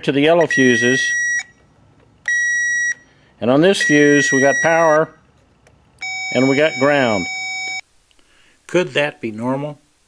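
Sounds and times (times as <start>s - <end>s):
circuit tester high beep: 0.4s - 1.6s, 2.3s - 3.1s, 3.8s - 5.1s, 6.0s - 7.8s.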